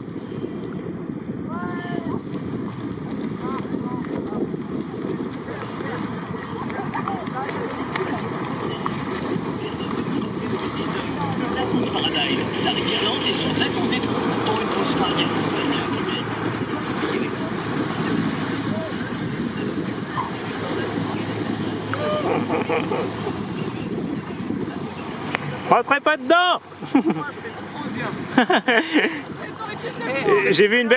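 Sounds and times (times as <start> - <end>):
wind noise on microphone: 0.0 - 25.7
water rushing and splashing: 0.0 - 30.9
faint shouts: 21.9 - 22.4.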